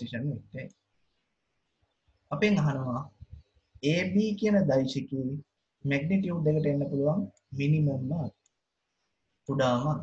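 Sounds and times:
person speaking: 0:00.0 - 0:00.8, 0:02.3 - 0:08.4, 0:09.4 - 0:10.0
mouse click: 0:08.3 - 0:08.6.

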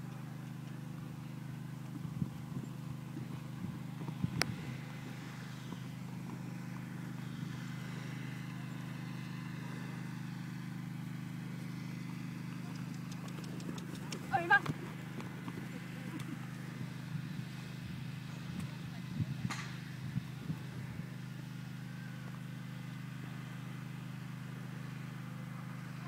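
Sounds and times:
horse hoofbeats on grass: 0:00.0 - 0:10.0, 0:11.6 - 0:20.8
steady low hum: 0:00.0 - 0:22.4.

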